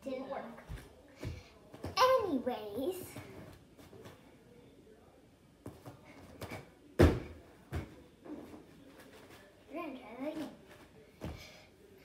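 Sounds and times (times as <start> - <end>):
bare feet thudding on a mat: 5.6 - 8.6, 10.7 - 11.5.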